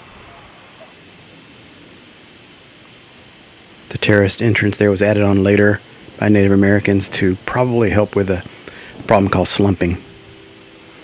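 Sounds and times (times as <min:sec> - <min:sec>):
insect trilling: 0:00.0 - 0:11.0
soft outdoor hiss: 0:00.0 - 0:11.0.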